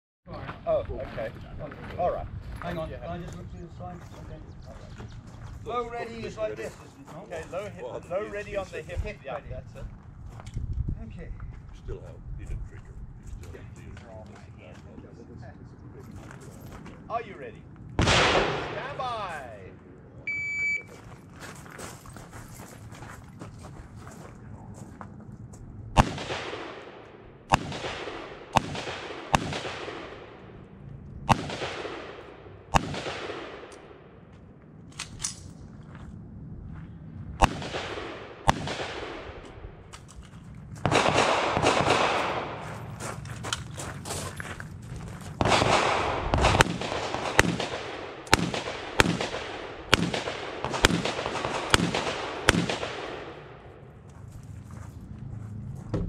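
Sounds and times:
gunshots with long echo: 18.0 - 19.4, 25.9 - 34.3, 37.4 - 39.9, 40.8 - 43.0, 45.4 - 54.0.

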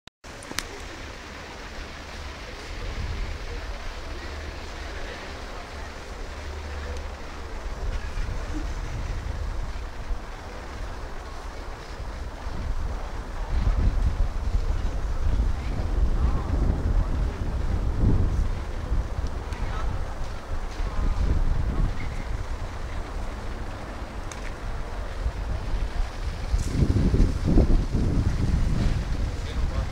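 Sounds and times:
wind buffeting microphone: 0.3 - 29.9.

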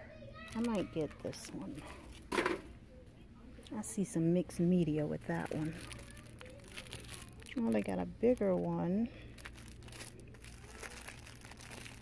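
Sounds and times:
cellophane wrap crinkling: 0.4 - 2.4, 4.7 - 12.0.

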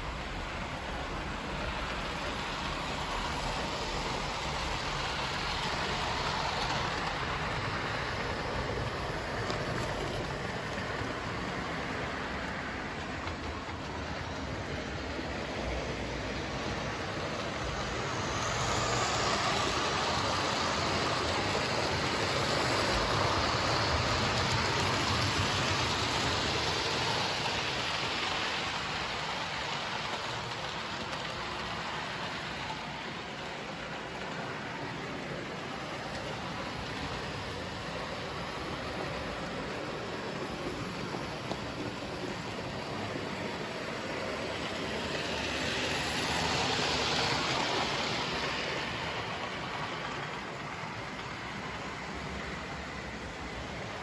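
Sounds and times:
model trains running on track: 0.0 - 54.0.

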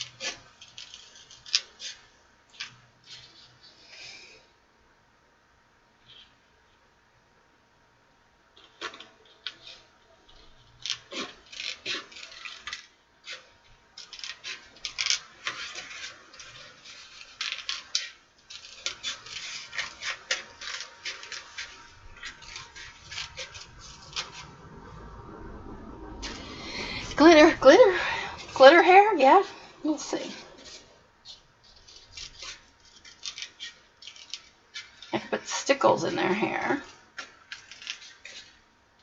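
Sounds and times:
scissors snipping paper: 0.0 - 3.4, 8.6 - 24.4, 30.2 - 35.4, 37.2 - 38.6
paper rustling: 8.6 - 24.6, 27.2 - 35.4, 36.3 - 38.6.

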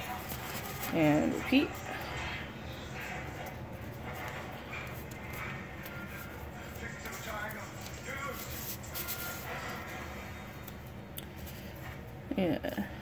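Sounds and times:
paper being folded: 0.0 - 12.1
television voices and music: 0.0 - 13.0.

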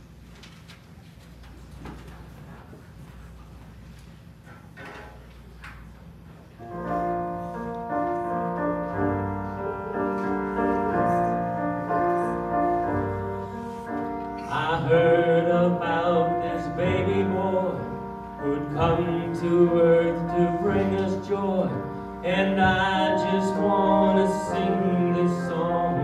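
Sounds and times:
keyboard playing piano chords: 6.6 - 26.0.

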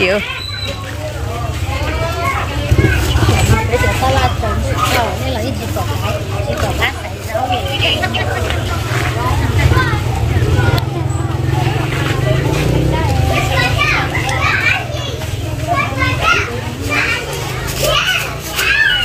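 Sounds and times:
children's high voices: 0.0 - 5.2, 7.5 - 19.0
people talking and calling out: 0.0 - 19.0.

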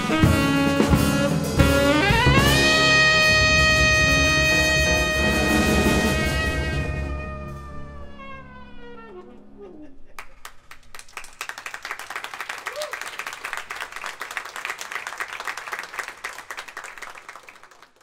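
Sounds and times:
jazz band note sliding down: 0.0 - 9.8
audience applauding: 10.2 - 18.0.

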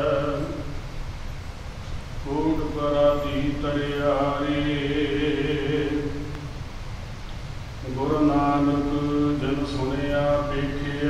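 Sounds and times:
man chanting melodically: 0.0 - 0.9, 2.2 - 6.4, 7.8 - 11.0.

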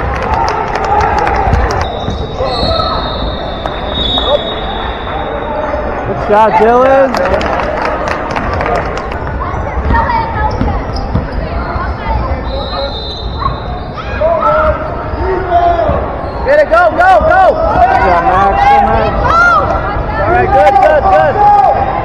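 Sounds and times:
sneakers squeaking: 1.5 - 5.8, 9.5 - 15.2, 15.8 - 18.2.

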